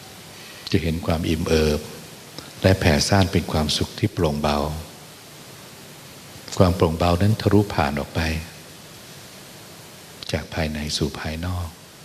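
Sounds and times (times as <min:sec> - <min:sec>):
steady background hiss: 0:00.0 - 0:12.0
man speaking: 0:00.7 - 0:04.9, 0:06.5 - 0:08.6, 0:10.2 - 0:11.8.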